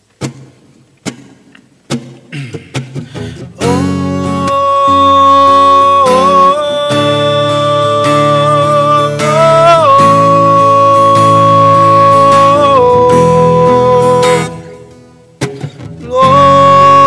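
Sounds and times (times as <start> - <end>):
acoustic guitar picked notes: 0.0 - 17.0.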